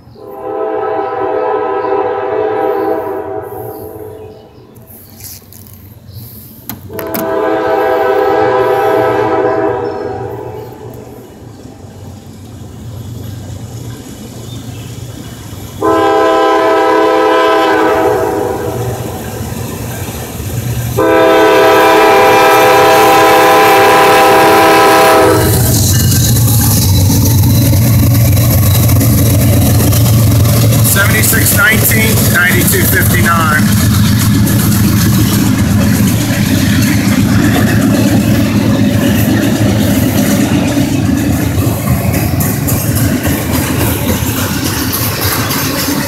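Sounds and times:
diesel engines rumbling: 0.0 - 46.0
locomotive air horn: 0.2 - 4.6, 6.9 - 11.0, 15.8 - 19.1, 21.0 - 25.7.

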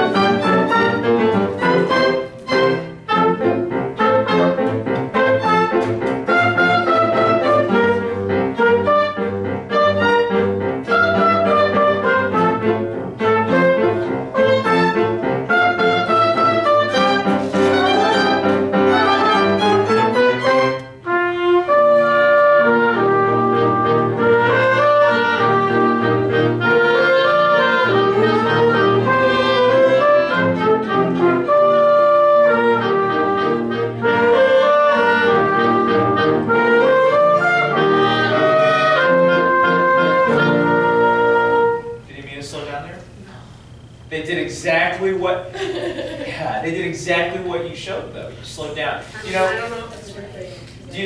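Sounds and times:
small ensemble with violin playing: 0.0 - 43.4.

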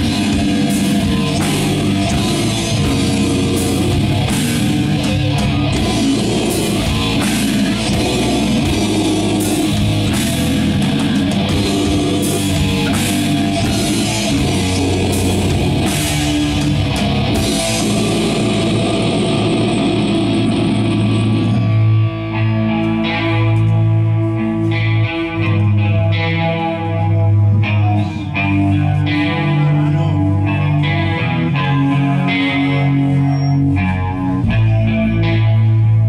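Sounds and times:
drums and crashing cymbals: 0.0 - 21.8
bass guitar slow held notes: 0.0 - 36.0
distorted electric guitars: 0.0 - 36.0
doom metal band playing live: 0.0 - 36.0.

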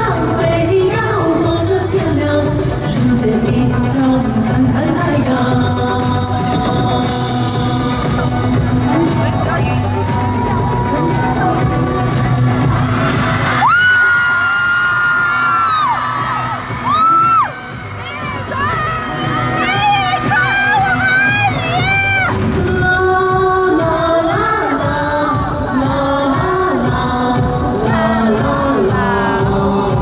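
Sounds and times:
live pop concert music: 0.0 - 30.0.

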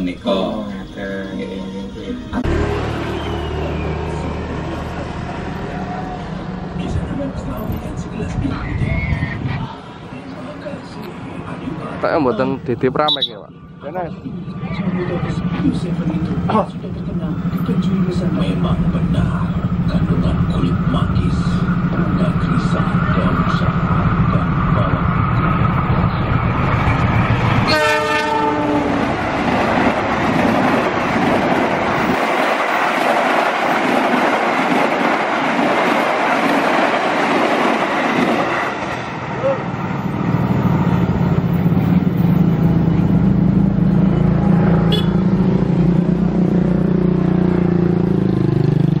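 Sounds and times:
diesel locomotive engine: 0.0 - 49.0
road vehicle engines idling: 2.4 - 8.8, 9.4 - 27.6
train wheels clattering on rail: 25.4 - 39.1
train horn blast: 27.6 - 29.1, 44.2 - 45.4.

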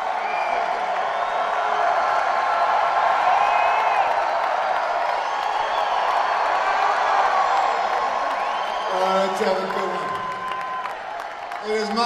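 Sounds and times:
arena crowd cheering: 0.0 - 12.0
high whistles: 8.3 - 9.3.

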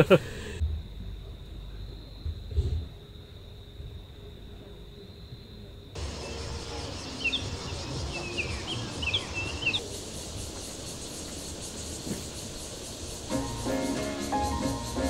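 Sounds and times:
steady background hiss: 0.0 - 15.0
bird chirping: 6.0 - 15.0.

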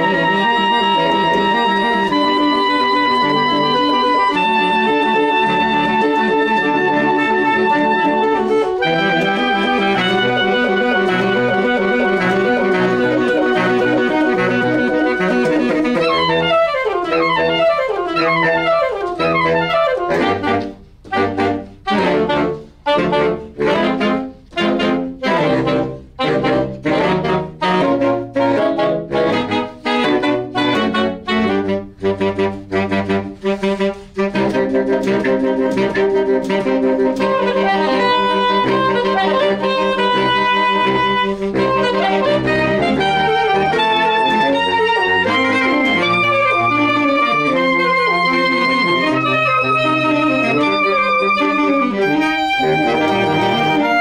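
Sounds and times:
saxophone quartet playing: 0.0 - 54.0.

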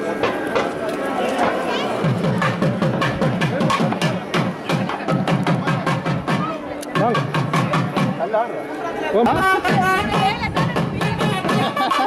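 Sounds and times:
fast driving drumming: 2.0 - 8.2, 9.5 - 12.0.

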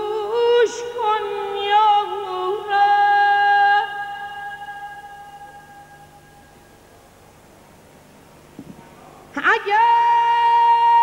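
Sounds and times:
woman singing a long note: 0.0 - 6.5, 9.4 - 11.0.

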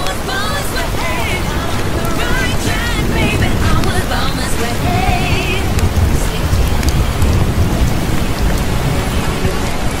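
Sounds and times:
steady rain: 0.0 - 10.0
deep rumble: 1.0 - 10.0.

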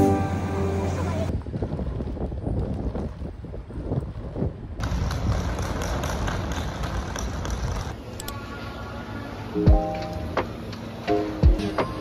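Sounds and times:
traffic noise: 0.0 - 12.0
wind buffeting microphone: 0.9 - 8.0.

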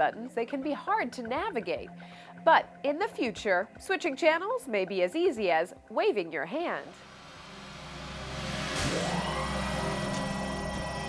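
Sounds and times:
electronic music: 6.6 - 11.0
sustained synth texture: 6.9 - 11.0
whoosh: 6.9 - 11.0.

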